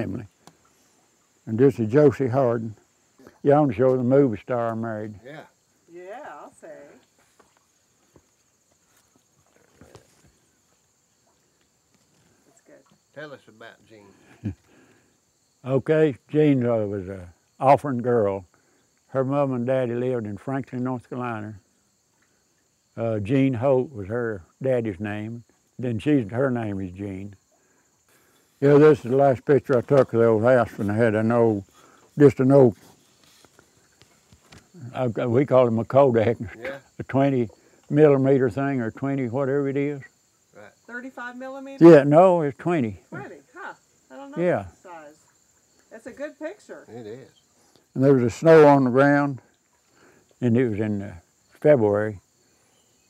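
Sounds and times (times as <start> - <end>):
man talking: 0.0 - 0.3, 1.5 - 5.6, 13.2 - 14.6, 15.6 - 18.5, 19.1 - 21.6, 23.0 - 27.4, 28.6 - 32.8, 34.8 - 40.8, 41.8 - 43.4, 44.4 - 44.7, 46.9 - 49.4, 50.4 - 52.2
high-pitched insect drone: 30.2 - 49.4.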